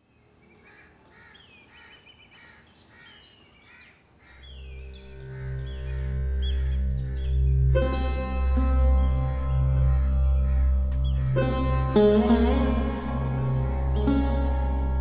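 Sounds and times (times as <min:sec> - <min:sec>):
birds chirping: 0:00.0 - 0:15.0
low background music drone: 0:04.4 - 0:15.0
plucked string notes: 0:05.0 - 0:15.0.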